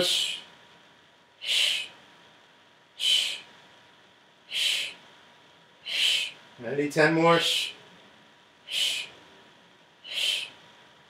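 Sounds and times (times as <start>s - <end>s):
person exhaling sharp hisses: 0.0s - 0.5s, 1.4s - 2.0s, 3.0s - 3.5s, 4.5s - 5.0s, 5.8s - 6.4s, 8.7s - 9.2s, 10.0s - 10.6s.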